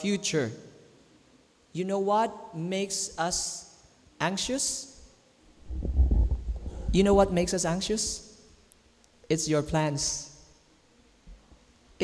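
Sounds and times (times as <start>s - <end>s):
microphone handling noise: 5.5s - 8.0s.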